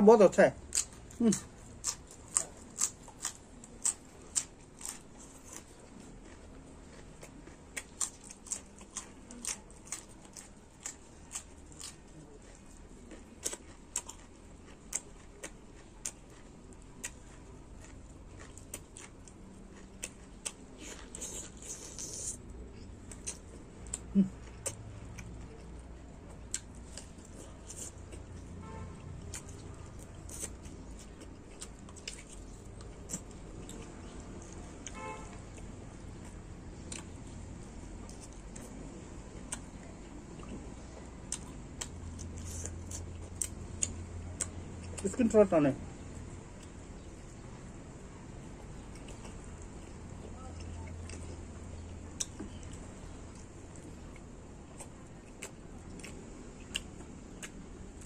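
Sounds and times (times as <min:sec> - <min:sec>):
chewing and lip-smacking: 0:00.6 - 0:45.2, 0:45.9 - 0:58.0.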